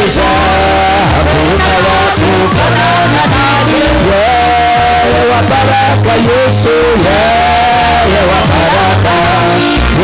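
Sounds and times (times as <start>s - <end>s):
amplified instrumental backing: 0.0s - 10.0s
man singing into a microphone: 0.0s - 10.0s.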